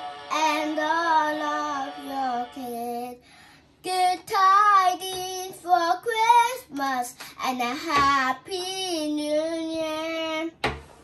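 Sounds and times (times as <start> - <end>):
girl singing into toy microphone: 0.2 - 10.6.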